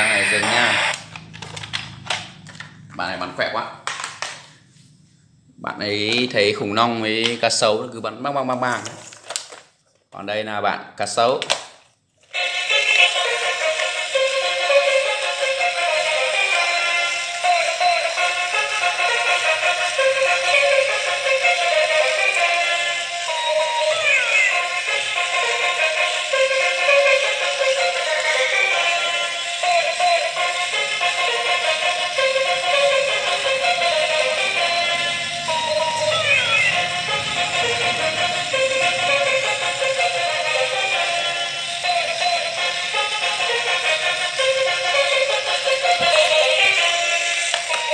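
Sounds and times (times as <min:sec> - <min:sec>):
tinny synthesized toy melody: 0:12.4 - 0:47.9.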